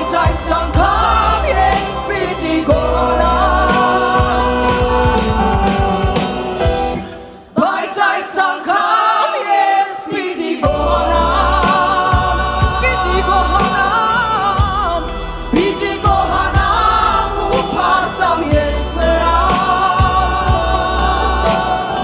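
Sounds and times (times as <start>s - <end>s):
group of singers: 0.0s - 22.0s
keyboard: 0.0s - 22.0s
woman singing lead: 0.0s - 22.0s
steady beat: 0.1s - 7.0s
low bass: 14.6s - 21.5s.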